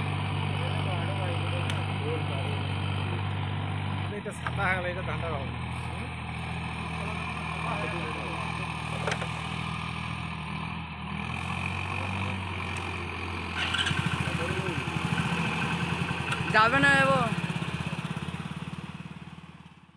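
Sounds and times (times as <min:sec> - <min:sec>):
tractor diesel engine under load: 0:00.0 - 0:19.9.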